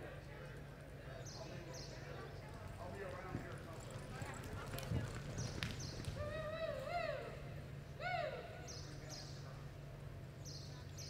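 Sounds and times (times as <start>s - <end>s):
steady low hum: 0.0s - 11.0s
horse hooves on dirt: 2.2s - 6.5s.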